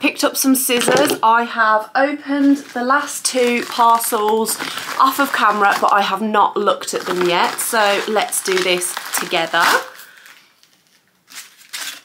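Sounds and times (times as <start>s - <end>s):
packaging rustling scrapes: 2.4s - 6.2s, 6.8s - 12.0s.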